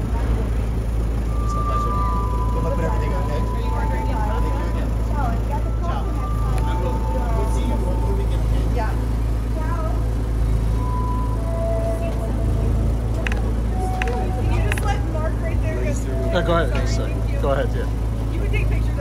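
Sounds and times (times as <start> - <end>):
indistinct voices: 0.0 - 19.0
traffic rumble: 0.0 - 19.0.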